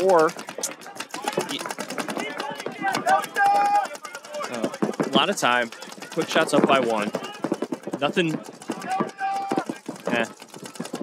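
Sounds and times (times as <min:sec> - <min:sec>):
commentators speaking: 0:00.0 - 0:11.0.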